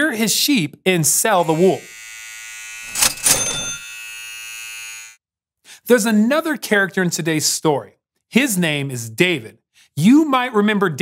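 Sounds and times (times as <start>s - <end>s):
electric hair clippers buzzing: 1.3s - 5.2s.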